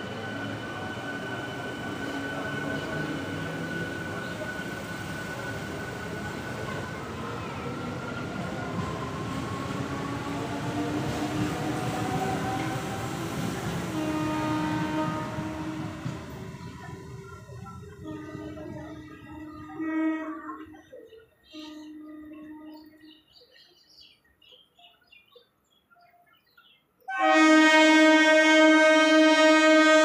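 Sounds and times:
train coaches rumbling on rails: 0:00.0 - 0:25.0.

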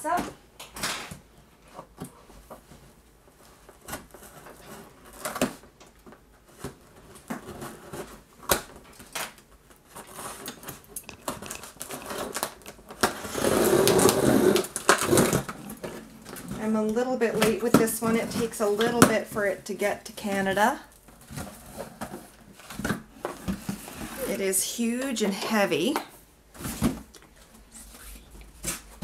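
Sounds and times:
packing tape ripping: 0:06.6 - 0:16.6.

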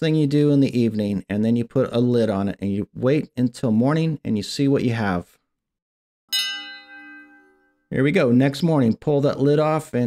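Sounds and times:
bell-like chime ringing: 0:06.3 - 0:07.9.

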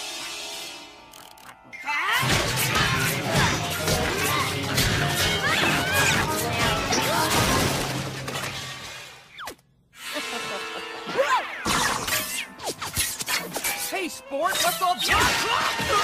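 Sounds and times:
busy cartoon music: 0:00.0 - 0:16.0.

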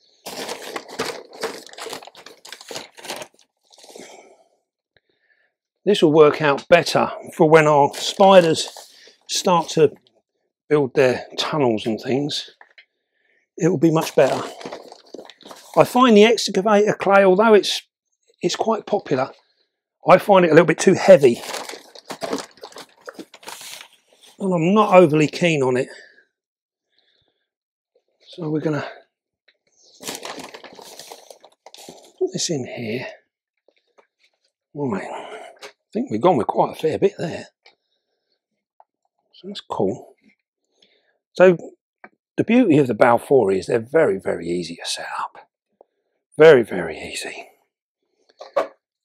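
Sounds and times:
compost rustling and crunching: 0:21.2 - 0:23.8.

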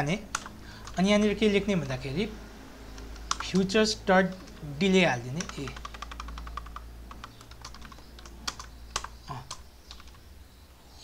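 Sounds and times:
faint low hum: 0:00.0 - 0:11.0
keyboard typing: 0:00.2 - 0:02.3, 0:02.9 - 0:10.2.

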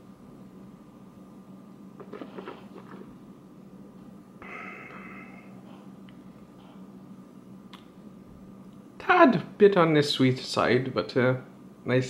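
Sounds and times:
breath out through nose: 0:04.4 - 0:05.6.

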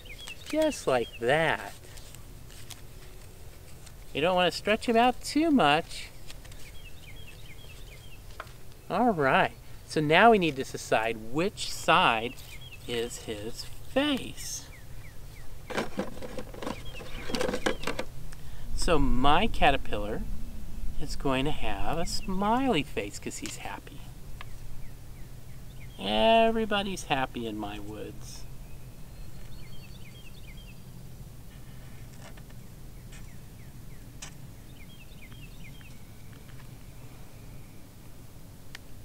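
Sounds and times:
songbird chirping: 0:00.0 - 0:38.2
low outdoor rumble: 0:00.0 - 0:39.0
paper rustling and crinkling: 0:00.2 - 0:00.9, 0:01.6 - 0:04.1, 0:06.2 - 0:08.7.

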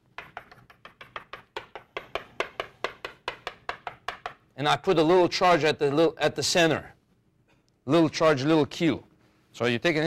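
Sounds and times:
chalk tapping on blackboard: 0:00.0 - 0:04.4.

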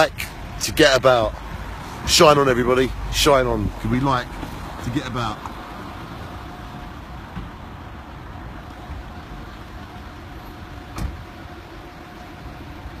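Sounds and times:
road traffic passing: 0:00.0 - 0:13.0.

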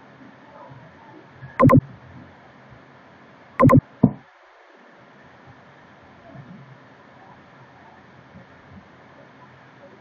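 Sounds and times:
computer mouse button clicking: 0:01.6 - 0:01.8, 0:03.6 - 0:04.2.

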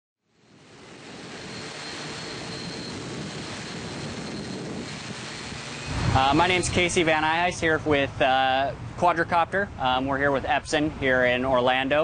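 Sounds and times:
faint high motor whine: 0:00.2 - 0:12.0
propeller wash and wind rush: 0:00.3 - 0:12.0.

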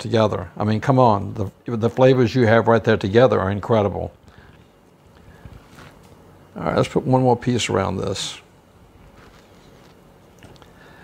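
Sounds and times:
low steady hum: 0:00.0 - 0:11.0
soft squishing of raw meat: 0:04.5 - 0:06.2, 0:09.0 - 0:10.7.

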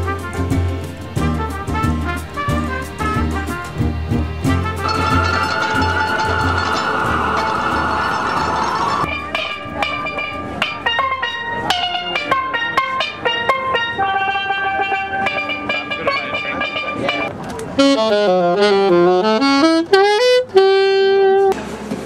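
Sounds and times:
steelpan melody: 0:00.0 - 0:20.2.

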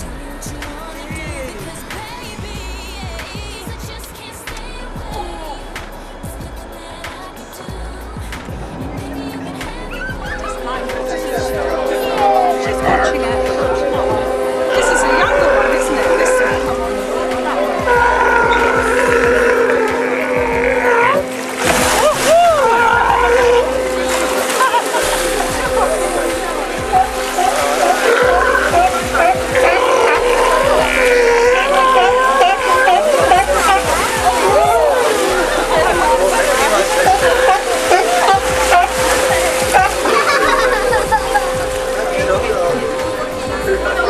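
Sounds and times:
boat motor whining: 0:00.0 - 0:44.0
passengers exclaiming: 0:00.0 - 0:44.0
steady hum: 0:00.0 - 0:44.0
water splashing: 0:00.0 - 0:44.0
rising and falling cries: 0:08.8 - 0:44.0.

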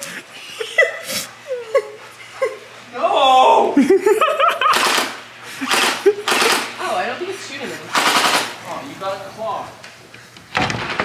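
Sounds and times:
laughter: 0:00.0 - 0:02.7, 0:03.8 - 0:04.8, 0:05.5 - 0:06.6
toy blaster firing: 0:04.7 - 0:06.7, 0:07.9 - 0:08.6.

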